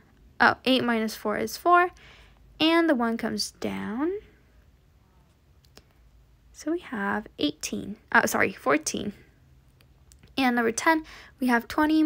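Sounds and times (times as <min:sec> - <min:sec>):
woman's voice: 0:00.4 - 0:02.0, 0:02.6 - 0:04.4, 0:06.6 - 0:09.3, 0:10.3 - 0:12.0.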